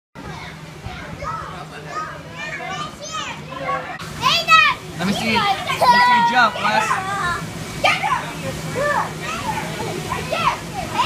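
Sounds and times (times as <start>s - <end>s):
children shouting and chattering: 0.2s - 11.0s.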